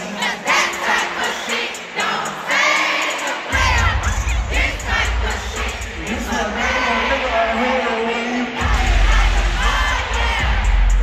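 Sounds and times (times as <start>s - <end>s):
amplified music: 0.0s - 11.0s
crowd singing along and shouting: 0.0s - 11.0s
heavy deep bass: 3.5s - 7.5s, 8.6s - 11.0s.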